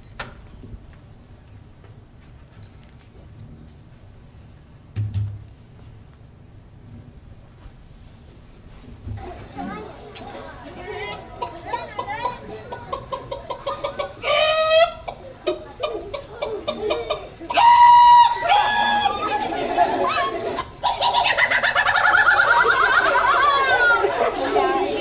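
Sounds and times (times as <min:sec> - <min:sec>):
many voices calling out: 0:09.2 - 0:25.0
loud drawn-out calls: 0:12.9 - 0:15.6, 0:16.2 - 0:25.0
children and adults shouting: 0:13.4 - 0:15.1, 0:16.2 - 0:25.0.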